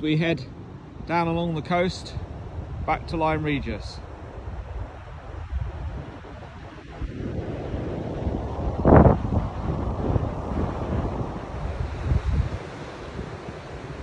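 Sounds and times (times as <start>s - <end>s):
surf on pebble shore: 0.0s - 14.0s
wind buffeting microphone: 0.0s - 14.0s.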